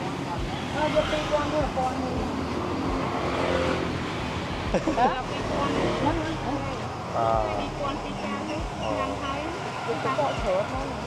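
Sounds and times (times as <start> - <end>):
engine hum: 0.0 - 11.0
faint talk: 4.7 - 11.0.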